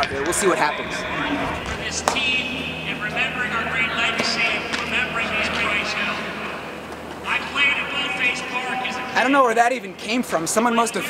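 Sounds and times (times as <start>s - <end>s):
low hum: 0.0s - 9.3s
man speaking over loudspeakers: 0.0s - 11.0s.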